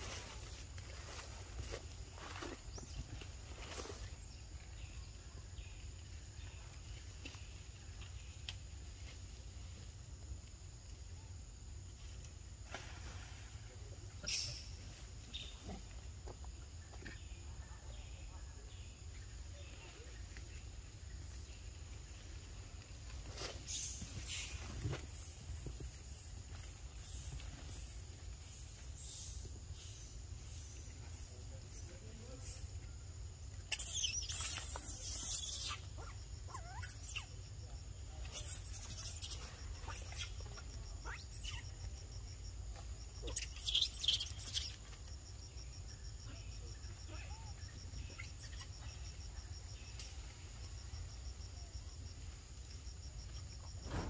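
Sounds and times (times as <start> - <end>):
rustling in dry leaves: 0.0 - 11.0, 19.6 - 31.0
high insect drone: 17.2 - 54.0.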